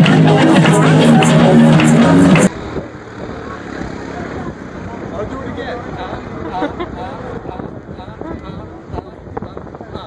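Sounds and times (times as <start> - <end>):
faint voices of passers-by: 0.0 - 10.0
traffic rumble: 0.0 - 10.0.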